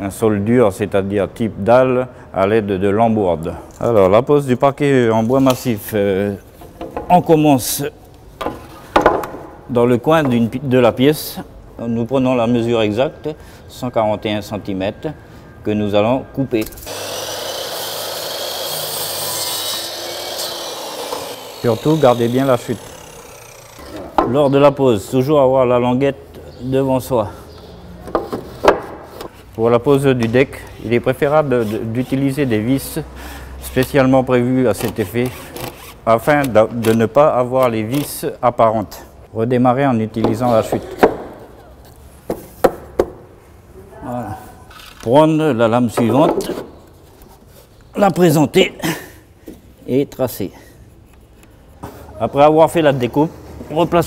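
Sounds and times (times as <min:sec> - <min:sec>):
faint motor hum: 0:16.8 - 0:24.2
mitre saw cutting wood: 0:16.9 - 0:24.2.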